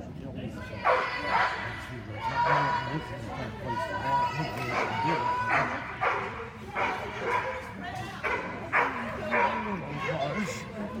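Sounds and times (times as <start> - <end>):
dog barking: 5.5 - 7.6, 8.2 - 9.6.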